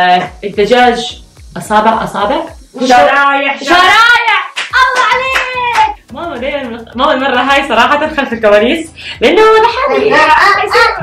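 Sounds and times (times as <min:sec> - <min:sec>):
sharp hand claps: 0:04.5 - 0:06.0.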